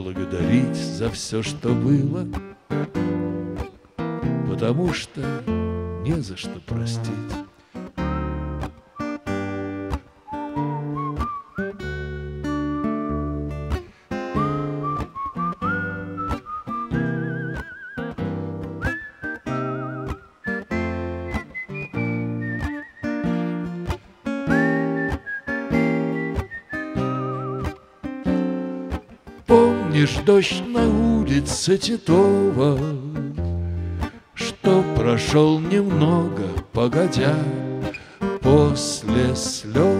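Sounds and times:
acoustic guitar strumming chords: 0:00.0 - 0:39.9
whistled melody: 0:08.0 - 0:27.9.

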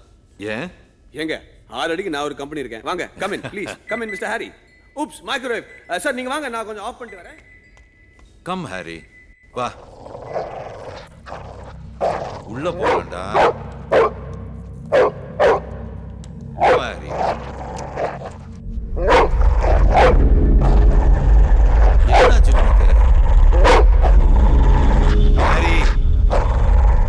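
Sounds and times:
loud low rumble: 0:11.8 - 0:27.0
dog barking: 0:12.8 - 0:14.2, 0:14.9 - 0:15.7, 0:16.6 - 0:16.9, 0:19.1 - 0:20.2, 0:22.1 - 0:22.4, 0:23.6 - 0:23.9.

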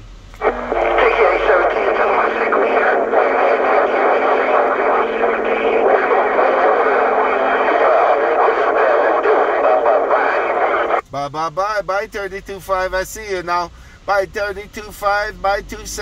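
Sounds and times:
garbled radio voices: 0:00.4 - 0:11.0
radio static: 0:00.4 - 0:11.0.

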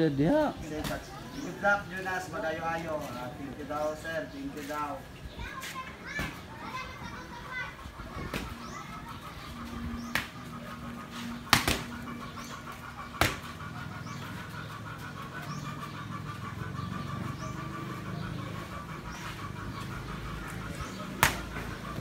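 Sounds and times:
rapid chirping: 0:06.7 - 0:22.0
boxing gloves hitting pads: 0:11.5 - 0:12.0, 0:13.2 - 0:13.5, 0:21.2 - 0:21.7.

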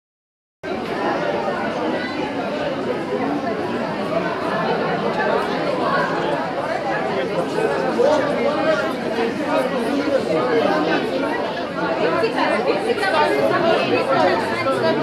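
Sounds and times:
crowd talking: 0:00.6 - 0:15.0.

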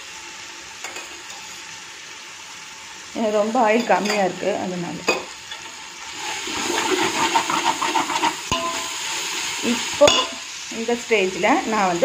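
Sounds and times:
sizzling frying: 0:00.0 - 0:12.0
spatula scraping metal pot: 0:05.5 - 0:09.0
spatula clinking against pot: 0:08.5 - 0:08.9, 0:10.1 - 0:10.4.

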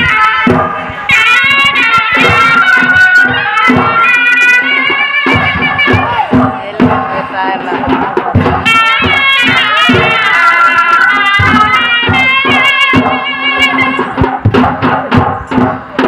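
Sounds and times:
drum beats: 0:00.0 - 0:16.0
shrill reed pipe melody: 0:00.0 - 0:16.0.

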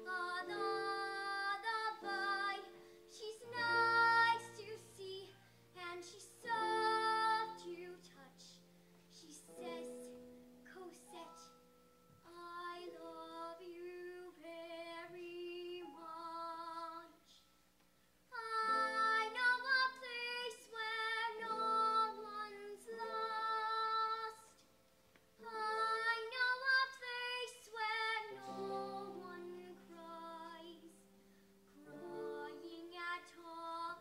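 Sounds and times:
girl singing: 0:00.0 - 0:17.5, 0:18.3 - 0:24.7, 0:25.4 - 0:31.1, 0:31.8 - 0:34.0.

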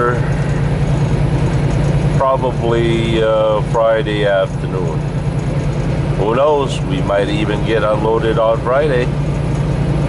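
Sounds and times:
diesel truck engine rumble: 0:00.0 - 0:10.0.

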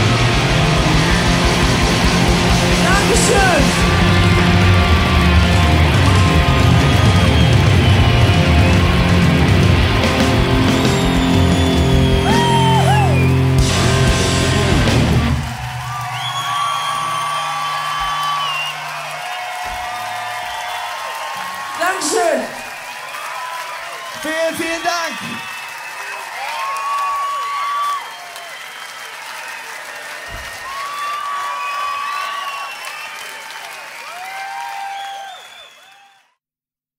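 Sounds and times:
bass and drums: 0:00.0 - 0:18.8
live rock band playing: 0:00.0 - 0:19.9
electric guitar: 0:00.0 - 0:20.2
crowd cheering and whooping: 0:00.0 - 0:36.4.

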